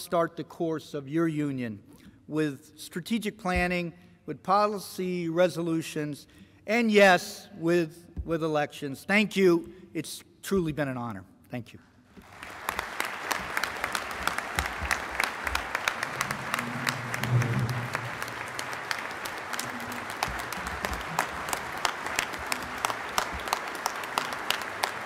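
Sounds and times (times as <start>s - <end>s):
audience applauding: 12.2s - 25.0s.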